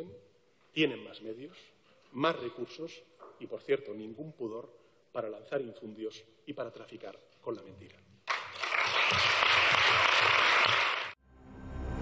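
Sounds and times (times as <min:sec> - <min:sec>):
audience applause: 0:08.3 - 0:11.2.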